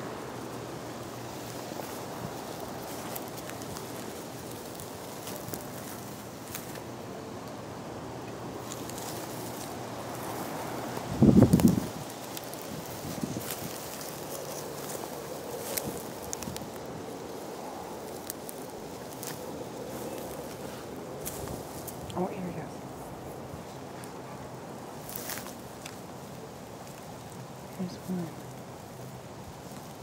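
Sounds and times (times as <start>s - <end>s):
rustling dry grass and leaves: 0.0s - 30.0s.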